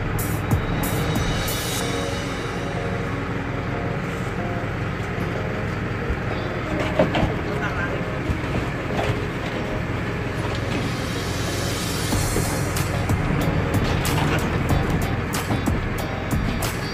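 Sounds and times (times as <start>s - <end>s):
boat engine rumbling: 0.0s - 16.9s.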